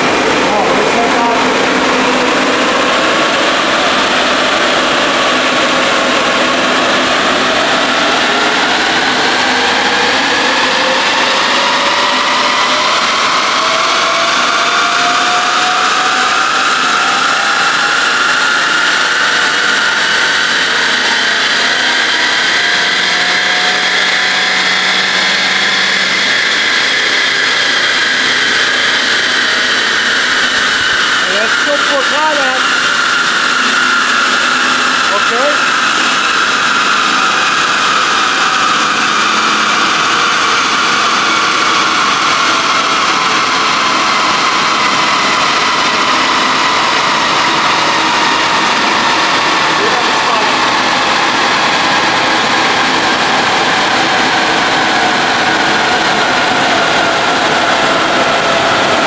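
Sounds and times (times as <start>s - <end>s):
steady rush of noise: 0.0s - 59.0s.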